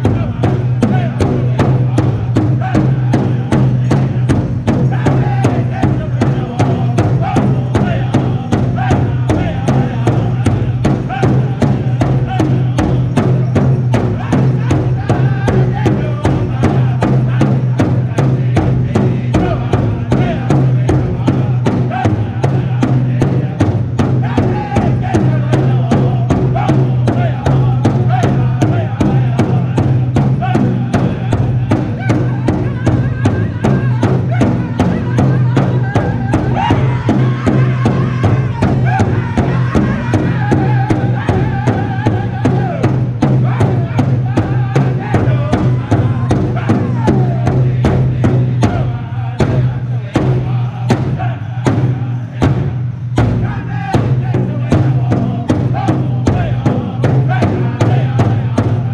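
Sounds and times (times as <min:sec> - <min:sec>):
group singing in unison: 0:00.0 - 0:58.9
large hide drum beaten with sticks: 0:00.0 - 0:58.9.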